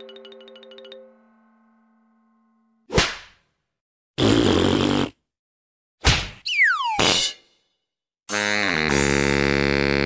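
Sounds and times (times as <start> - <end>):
buzzy rasping noise: 8.3 - 10.0.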